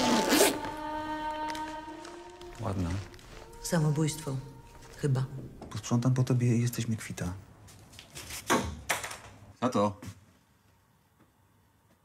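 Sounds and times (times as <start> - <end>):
zipper pulled open: 0.0 - 0.7.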